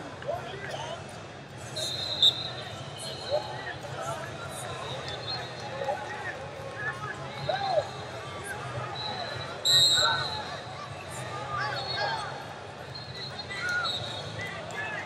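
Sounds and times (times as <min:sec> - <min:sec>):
referee's whistle blast: 0:01.8 - 0:03.3, 0:09.0 - 0:10.5
faint distant whistles: 0:01.8 - 0:03.4, 0:08.9 - 0:10.6, 0:11.6 - 0:14.6.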